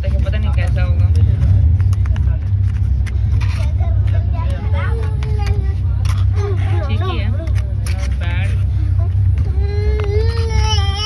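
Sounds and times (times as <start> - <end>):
train carriage rumbling: 0.0 - 11.0
small child whining: 9.0 - 11.0.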